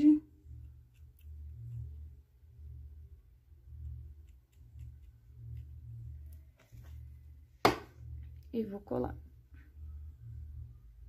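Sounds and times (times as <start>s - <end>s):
low wavering hum: 0.2s - 8.5s, 9.2s - 11.0s
sharp knock on table: 7.6s - 7.9s.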